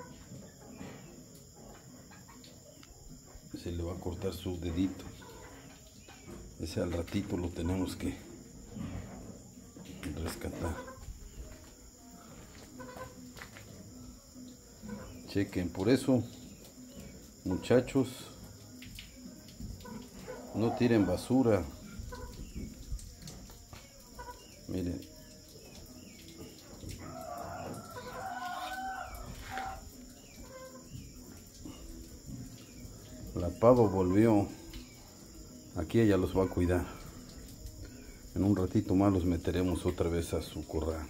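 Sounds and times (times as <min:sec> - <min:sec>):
peafowl wavering calls: 0:10.6 - 0:11.1, 0:12.4 - 0:13.2, 0:26.9 - 0:31.0
faint animal cries: 0:27.0 - 0:30.9.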